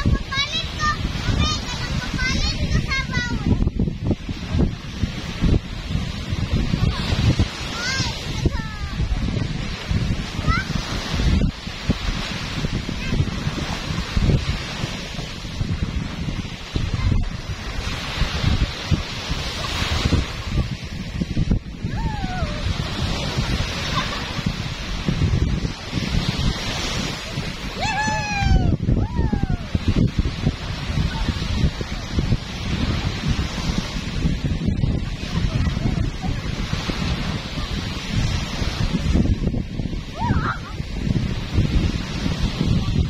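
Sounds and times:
small waves breaking on shore: 0.0s - 43.0s
wind buffeting microphone: 0.0s - 43.0s.

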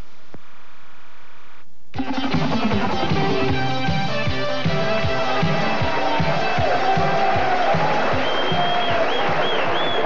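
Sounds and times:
theme music with drum beat: 2.0s - 10.0s
studio audience clapping and cheering: 3.0s - 10.0s
long high whistle: 8.2s - 10.0s.

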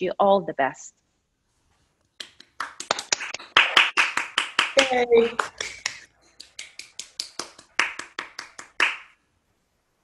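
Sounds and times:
hands clapping quickly: 2.2s - 9.2s.

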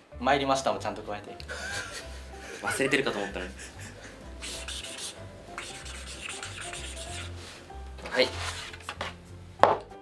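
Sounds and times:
marker pen scratching on card: 4.4s - 7.4s.

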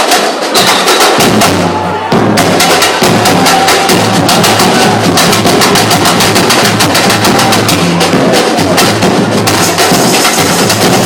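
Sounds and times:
samba drum ensemble: 0.0s - 11.0s.

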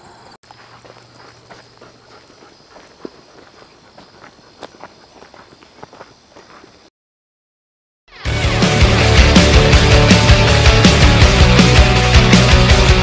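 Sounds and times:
footsteps on gravel: 0.4s - 6.9s.

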